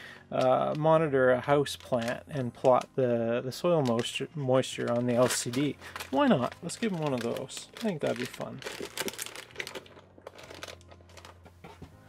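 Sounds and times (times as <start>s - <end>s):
plastic bags crinkling: 1.6s - 2.9s, 3.5s - 11.5s.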